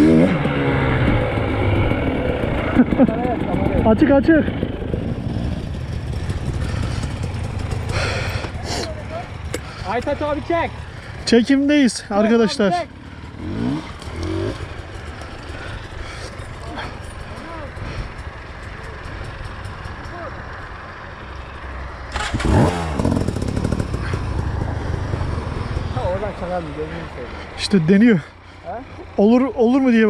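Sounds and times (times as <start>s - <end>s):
dirt bike engine revving: 0.0s - 27.8s
voices: 6.4s - 13.0s, 13.6s - 21.4s, 25.6s - 30.0s.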